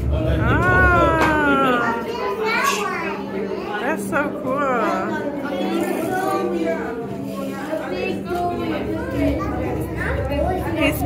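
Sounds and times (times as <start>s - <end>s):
crowd chatter: 0.0s - 11.0s
children talking and calling out: 0.4s - 11.0s.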